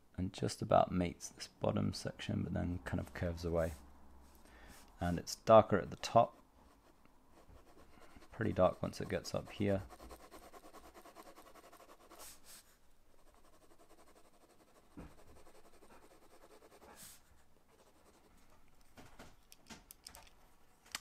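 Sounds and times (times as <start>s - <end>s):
pencil scratching on paper: 6.2s - 18.5s.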